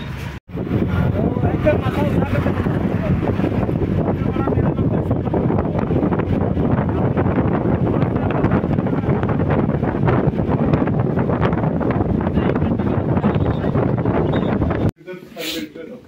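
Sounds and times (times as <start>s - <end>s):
vehicle road and engine noise: 0.0s - 14.9s
wind buffeting microphone: 0.0s - 14.9s.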